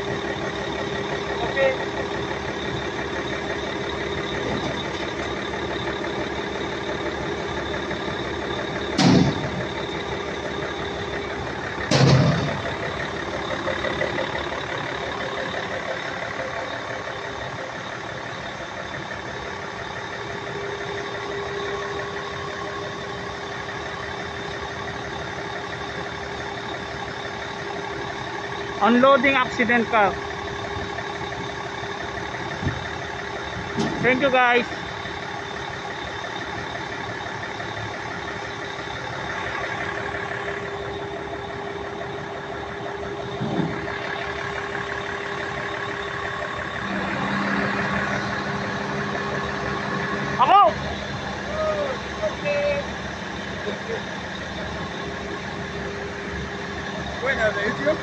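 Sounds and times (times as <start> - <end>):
heavy truck engine running: 0.0 - 58.0.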